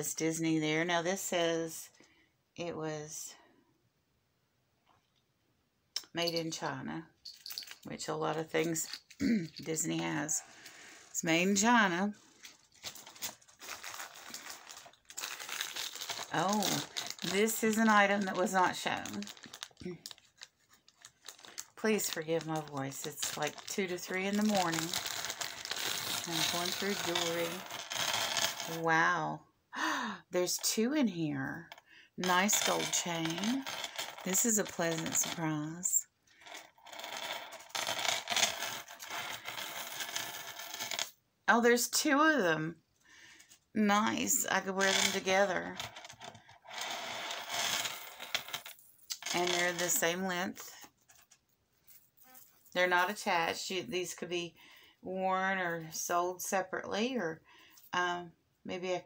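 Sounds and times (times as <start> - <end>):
necklace chains jingling: 6.1 - 10.4, 12.9 - 29.1, 32.3 - 35.6, 51.9 - 53.4
packaging crinkling and rustling: 12.2 - 28.4.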